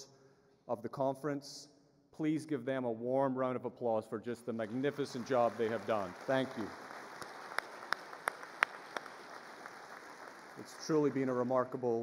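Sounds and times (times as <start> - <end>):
close hand claps: 4.6 - 11.8
audience applauding: 4.6 - 12.0.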